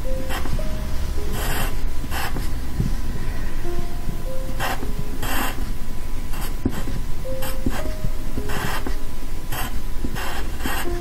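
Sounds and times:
pencil scratching on paper: 0:01.3 - 0:02.5, 0:04.6 - 0:05.7, 0:06.3 - 0:11.0.

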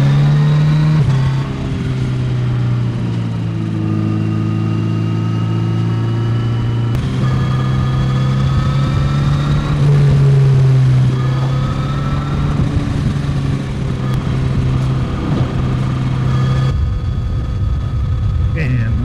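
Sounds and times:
motorcycle engine running: 0:00.9 - 0:19.0.

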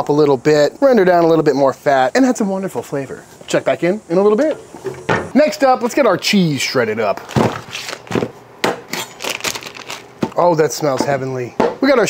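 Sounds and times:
plastic bags crinkling: 0:07.2 - 0:08.3, 0:08.9 - 0:10.4.

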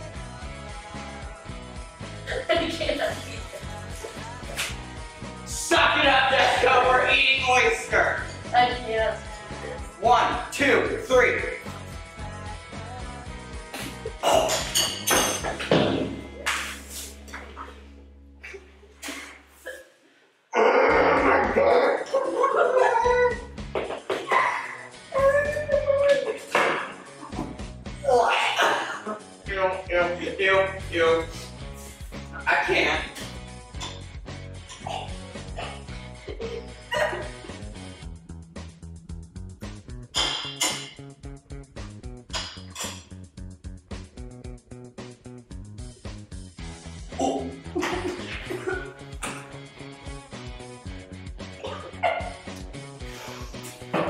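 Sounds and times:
background music: 0:00.0 - 0:19.7, 0:20.6 - 0:54.0
person's wordless disgusted reactions: 0:13.7 - 0:14.7, 0:20.5 - 0:23.5, 0:28.0 - 0:29.3, 0:34.8 - 0:37.4, 0:47.1 - 0:49.5
person gagging: 0:13.8 - 0:14.7, 0:20.6 - 0:23.5, 0:28.0 - 0:29.3, 0:34.8 - 0:37.5, 0:47.1 - 0:49.6, 0:51.6 - 0:52.5.

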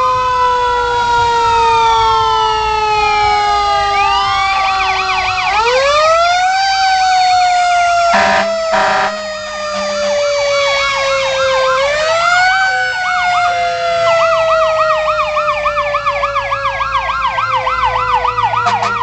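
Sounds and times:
fast warbling siren: 0:00.0 - 0:19.0
wailing fire engine siren: 0:00.0 - 0:19.0
truck horn blasts: 0:08.1 - 0:10.2, 0:18.6 - 0:19.0.

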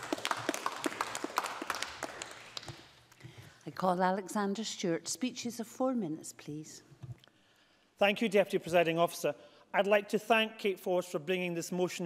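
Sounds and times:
light applause: 0:00.0 - 0:03.0.

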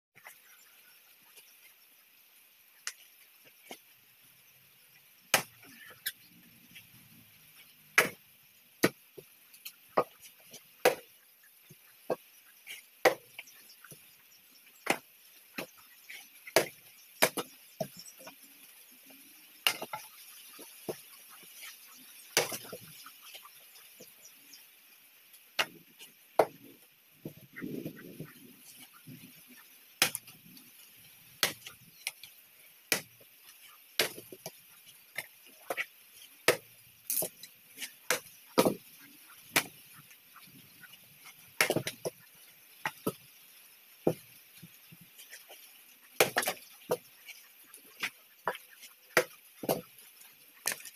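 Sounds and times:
blade chopping firewood: 0:05.3 - 0:06.2, 0:08.0 - 0:08.2, 0:08.8 - 0:09.0, 0:10.8 - 0:11.1, 0:13.0 - 0:13.4, 0:14.8 - 0:15.7, 0:16.6 - 0:18.2, 0:19.6 - 0:20.1, 0:22.4 - 0:22.8, 0:25.6 - 0:25.8, 0:26.4 - 0:26.6, 0:30.0 - 0:30.4, 0:31.4 - 0:32.3, 0:32.9 - 0:33.2, 0:34.0 - 0:34.6, 0:36.5 - 0:38.8, 0:39.5 - 0:39.8, 0:41.6 - 0:42.2, 0:46.2 - 0:47.0, 0:49.2 - 0:49.9.

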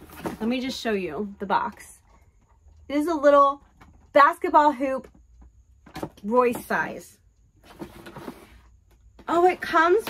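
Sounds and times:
cardboard box rustling and scraping: 0:00.0 - 0:01.1, 0:07.6 - 0:09.9.

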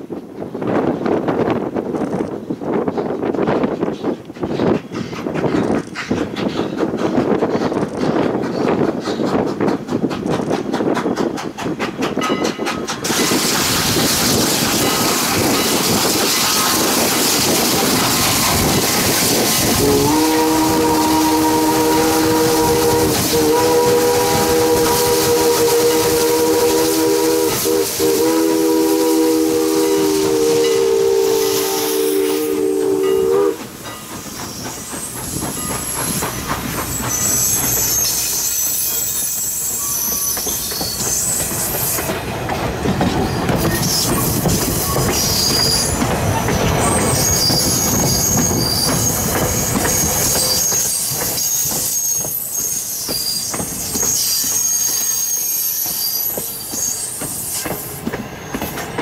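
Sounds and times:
train wheels clicking over rail joints: 0:00.0 - 0:59.0
steam whistle blowing a chord: 0:19.7 - 0:33.6
high wheel squeals: 0:34.0 - 0:42.2, 0:43.2 - 0:58.8.

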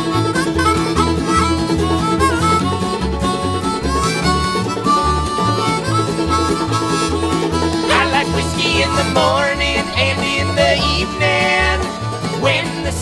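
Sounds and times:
acoustic guitar: 0:00.0 - 0:13.0
banjo: 0:00.0 - 0:13.0
harmonica melody: 0:00.0 - 0:13.0
upright bass: 0:00.0 - 0:13.0.

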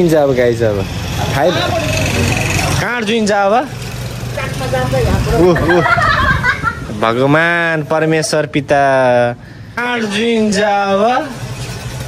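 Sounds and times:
people talking: 0:04.3 - 0:11.4.

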